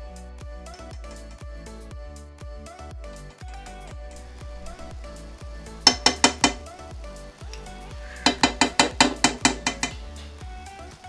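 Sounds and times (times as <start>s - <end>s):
background music: 0.0s - 11.0s
metal spoon clinking ceramic bowl: 8.3s - 10.0s.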